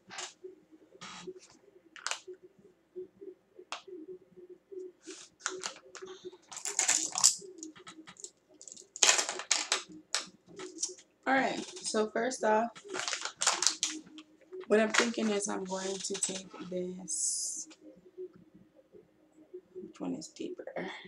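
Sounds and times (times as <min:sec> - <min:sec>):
makeup items clicking and tapping: 0:02.0 - 0:02.2, 0:05.1 - 0:12.0, 0:12.7 - 0:16.7.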